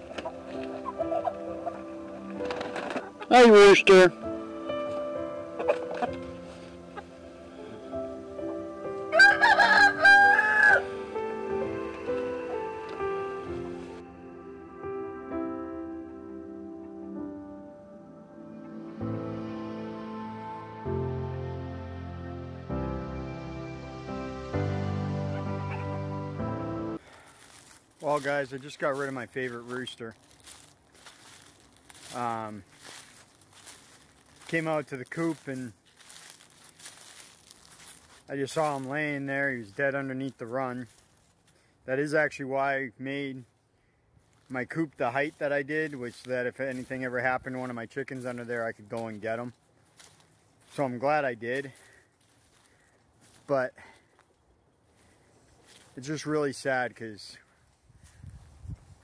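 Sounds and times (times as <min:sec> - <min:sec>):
footsteps crunching dry leaves: 0:00.0 - 0:14.0, 0:27.0 - 0:41.8, 0:43.4 - 0:56.7, 0:57.4 - 0:59.0
soft background music: 0:00.0 - 0:27.0
rooster crowing: 0:09.1 - 0:11.1.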